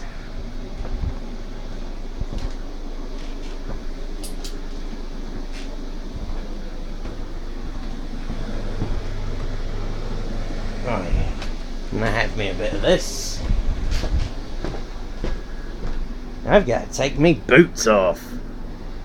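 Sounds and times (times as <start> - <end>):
low mechanical hum: 0.0 - 19.0.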